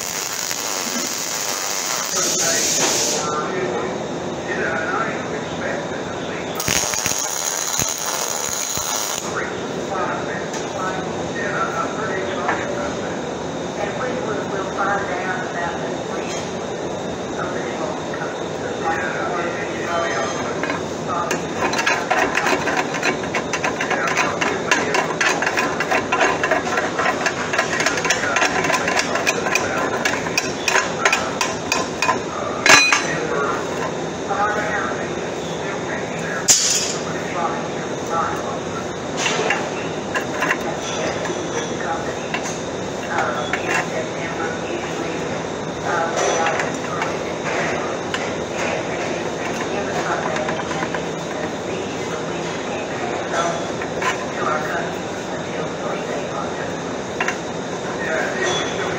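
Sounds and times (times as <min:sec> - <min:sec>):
loud metal clang: 0:36.5 - 0:37.0.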